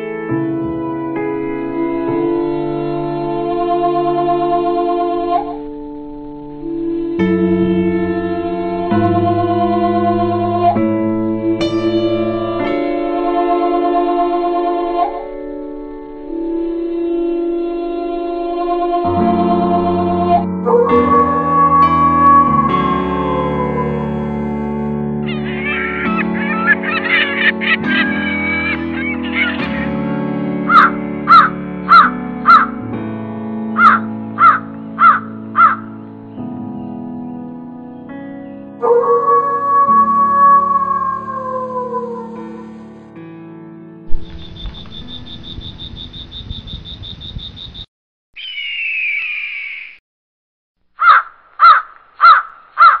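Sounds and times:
background music with chords: 0.0s - 40.6s
crow cawing: 30.7s - 32.7s, 33.8s - 35.9s, 51.0s - 53.0s
short wavering bird calls: 30.7s - 32.7s, 33.8s - 35.8s, 44.3s - 50.0s
rapid high pulsing chirp: 44.2s - 50.0s.

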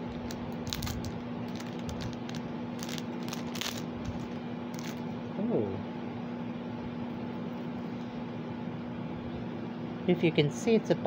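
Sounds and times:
plastic packaging crinkling: 0.0s - 5.0s
steady low hum: 0.0s - 11.0s.

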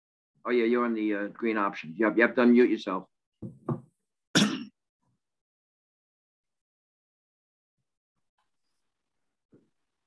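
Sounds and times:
person clearing throat: 4.4s - 4.8s.

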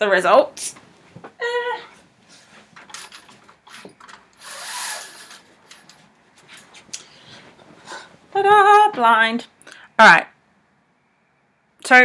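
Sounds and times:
faint knocks and rustles: 0.7s - 4.4s, 5.3s - 8.3s
window blind being pulled shut: 4.4s - 5.6s.

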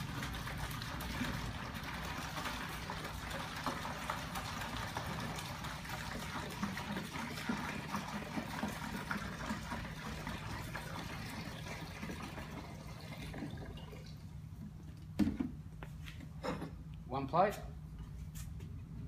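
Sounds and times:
liquid pouring into plastic pail: 0.0s - 14.8s.

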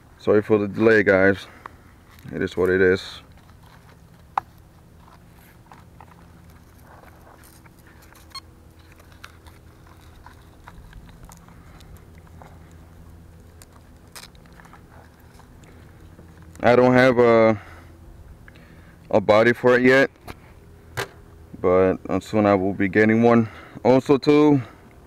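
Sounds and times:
low steady hum: 0.0s - 25.0s
light clicks and rustles: 1.5s - 16.6s.

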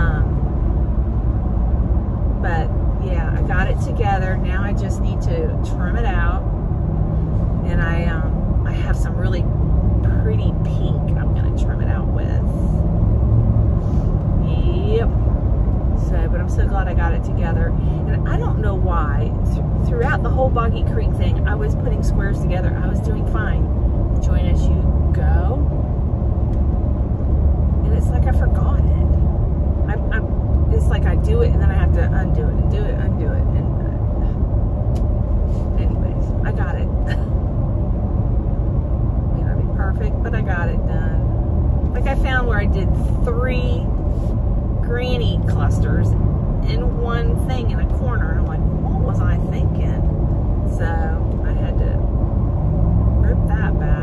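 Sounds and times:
woman talking: 0.0s - 0.4s, 2.4s - 6.4s, 7.6s - 12.7s, 14.4s - 15.2s, 16.0s - 25.7s, 27.8s - 29.2s, 29.9s - 34.3s, 35.8s - 37.3s, 39.3s - 41.2s, 42.0s - 43.9s, 44.8s - 50.1s, 50.7s - 52.0s, 53.2s - 54.0s
road and engine rumble: 0.0s - 54.0s.

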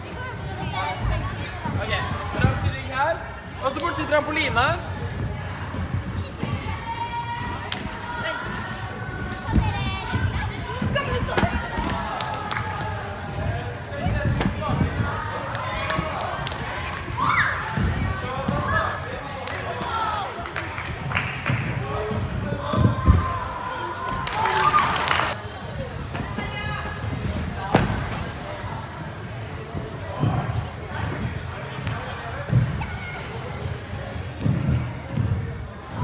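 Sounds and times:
children chattering: 0.0s - 3.1s, 3.9s - 19.0s.

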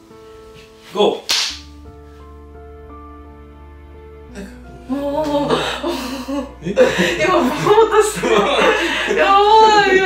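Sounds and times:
background music with held notes: 0.0s - 10.0s
sharp whip-like swish: 1.2s - 1.7s.

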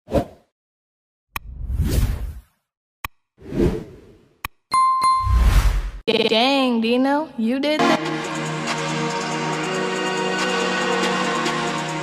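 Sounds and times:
bright ding: 4.7s - 5.4s.

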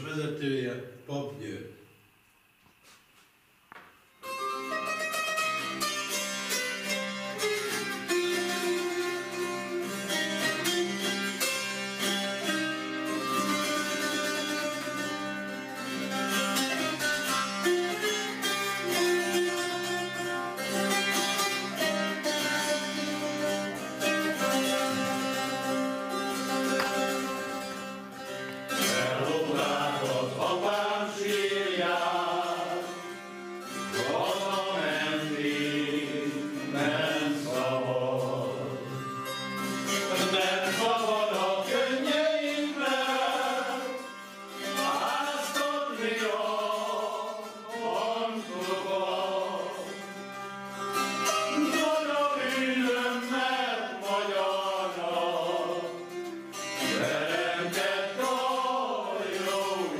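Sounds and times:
zither playing folk tune: 4.2s - 59.9s
man singing: 28.8s - 33.0s, 33.9s - 39.2s, 39.9s - 50.0s, 51.4s - 56.0s, 56.8s - 59.9s.

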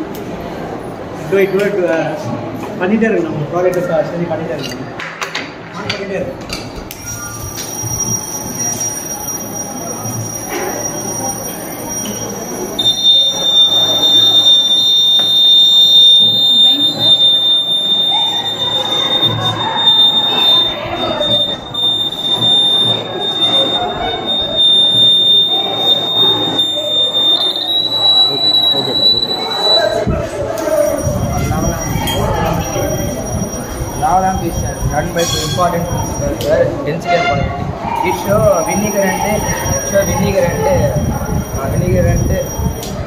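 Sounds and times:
crowd chatter: 0.0s - 43.0s
high-pitched electronic buzzer: 10.4s - 30.0s.

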